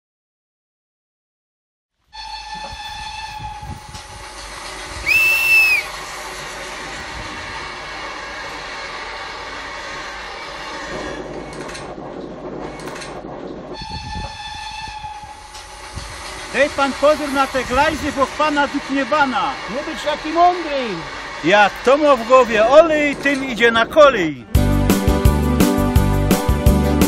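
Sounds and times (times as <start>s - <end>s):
train whistle blast: 2.1s - 4.1s, 5.0s - 6.1s
train running rattle: 2.1s - 26.7s
train clanks: 2.2s - 24.2s.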